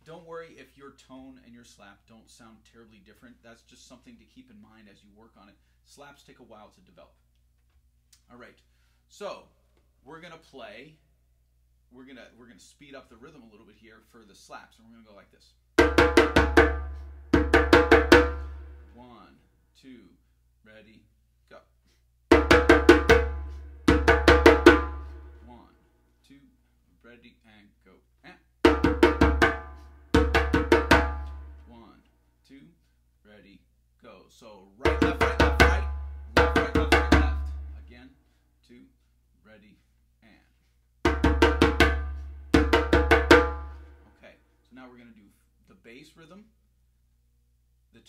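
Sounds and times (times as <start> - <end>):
djembe slaps: 15.8 - 18.4, 22.3 - 25.1, 28.7 - 31.5, 34.9 - 37.7, 41.1 - 43.8.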